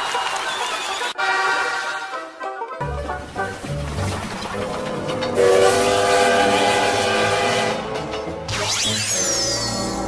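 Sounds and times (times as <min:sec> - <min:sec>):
running train noise: 0:02.8 - 0:08.4
train whistle: 0:05.4 - 0:07.9.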